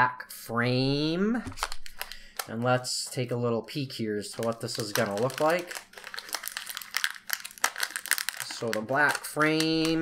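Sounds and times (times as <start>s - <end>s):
plastic crinkling and rustling: 1.5s - 3.3s, 4.2s - 10.0s.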